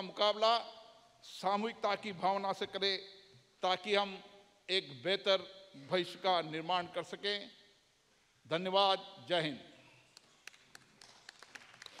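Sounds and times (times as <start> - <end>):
scattered hand claps: 10.1 - 12.0.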